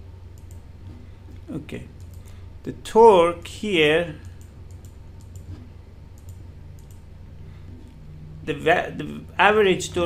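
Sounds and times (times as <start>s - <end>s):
steady low hum: 0.0s - 10.0s
computer mouse clicks: 0.3s - 1.4s, 2.0s - 2.4s, 4.2s - 7.1s.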